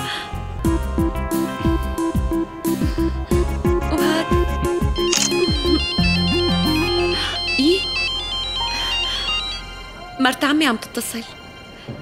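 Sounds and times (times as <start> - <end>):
mobile phone electronic ringtone: 5.0 - 10.0.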